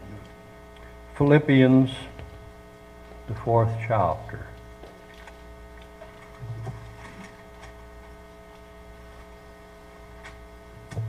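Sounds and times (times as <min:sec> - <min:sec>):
short low vocal hum: 0:00.0 - 0:00.6, 0:06.4 - 0:07.5
mains hum: 0:00.0 - 0:11.0.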